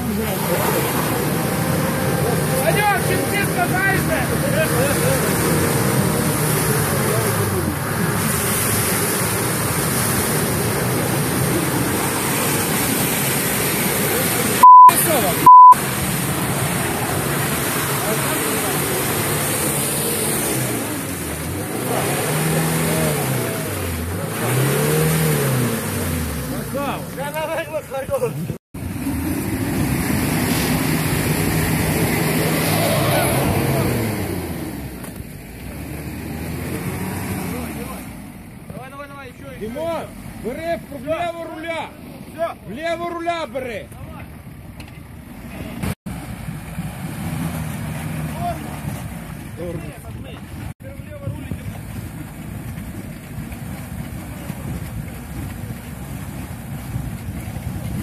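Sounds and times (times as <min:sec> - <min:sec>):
engine revving: 0:00.0 - 0:39.0, 0:45.2 - 0:50.8
wheels churning through mud: 0:00.0 - 0:58.0.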